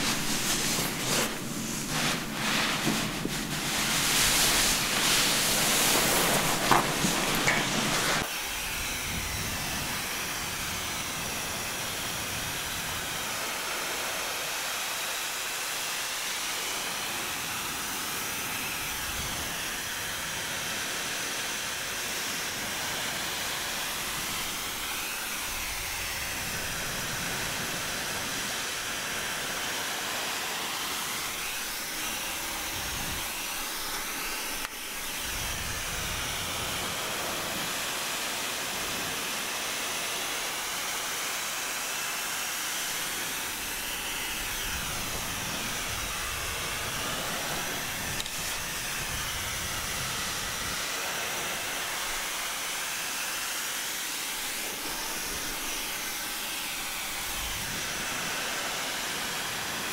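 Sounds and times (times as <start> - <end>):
hair dryer blowing: 0.0 - 59.9
hair dryer click: 5.7 - 8.2.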